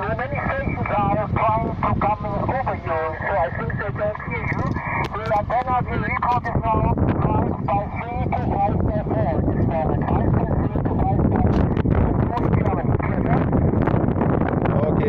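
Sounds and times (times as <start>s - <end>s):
voice over radio speaker: 0.0s - 13.8s, 14.7s - 15.0s
radio static: 0.0s - 14.0s.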